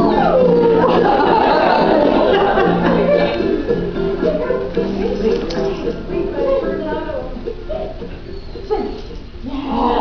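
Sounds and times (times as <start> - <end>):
dog howling: 0.0 - 1.0
background music: 0.0 - 10.0.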